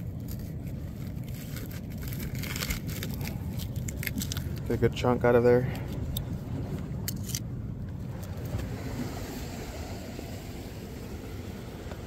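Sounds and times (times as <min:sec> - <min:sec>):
surf and wind rumble: 0:05.8 - 0:12.0.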